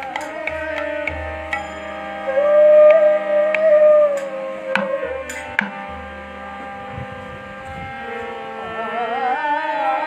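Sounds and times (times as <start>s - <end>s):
harmonium sustained chord: 0.0s - 10.0s.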